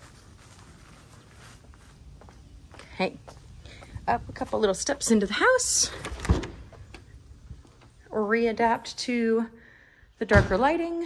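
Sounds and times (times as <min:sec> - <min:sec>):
door thudding shut: 0:06.0 - 0:07.0.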